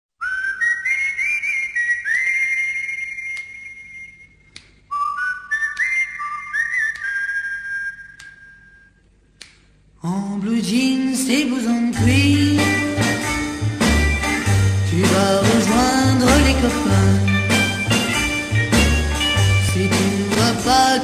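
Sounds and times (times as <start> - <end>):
high whistle-like melody: 0.2 - 9.0, 15.5 - 21.0.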